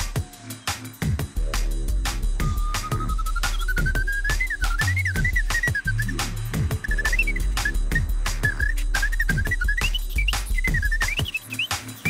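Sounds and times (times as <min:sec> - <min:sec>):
whistled melody: 0:00.0 - 0:01.8, 0:02.4 - 0:12.0
snare and hi-hats: 0:00.0 - 0:12.0
kick drum: 0:01.0 - 0:05.9, 0:06.6 - 0:11.4
deep bass: 0:01.1 - 0:11.3.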